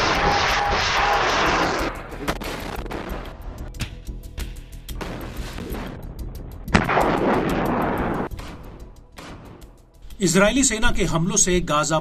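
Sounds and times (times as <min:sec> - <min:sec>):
loud blast with roar: 0:00.0 - 0:02.0.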